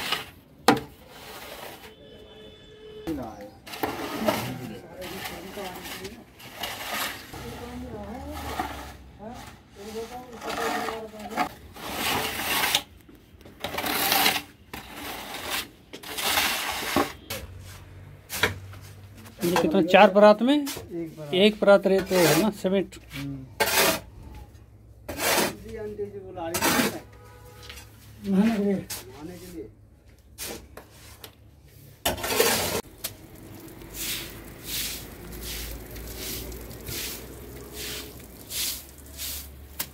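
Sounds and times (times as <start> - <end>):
wooden straightedge scraping mortar: 0.0 - 2.0, 3.6 - 17.3, 21.9 - 22.6, 23.2 - 24.4, 25.1 - 25.7, 26.5 - 27.1, 32.0 - 39.9.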